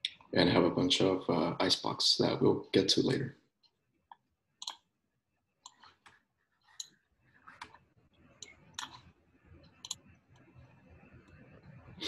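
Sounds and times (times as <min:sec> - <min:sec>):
faint low background noise: 0:00.0 - 0:03.5, 0:07.3 - 0:12.0
computer mouse clicks: 0:04.6 - 0:04.8, 0:08.4 - 0:09.1, 0:09.7 - 0:10.4.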